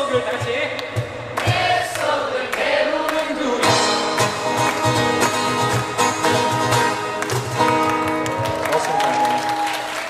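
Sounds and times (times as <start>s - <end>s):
strummed acoustic guitar: 3.6s - 8.2s
cajon beat: 3.6s - 8.5s.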